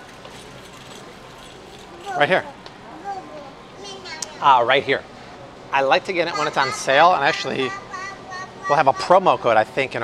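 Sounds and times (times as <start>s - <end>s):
toy cart rattling on concrete: 0.0s - 2.5s.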